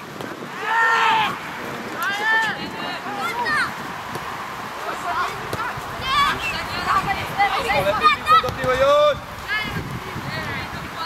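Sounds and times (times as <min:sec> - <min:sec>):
players calling faintly: 0:00.1 - 0:11.0.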